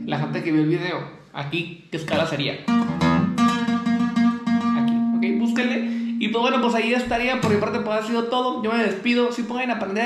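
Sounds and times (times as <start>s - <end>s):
acoustic guitar picked notes: 0.0s - 0.6s, 2.1s - 7.9s.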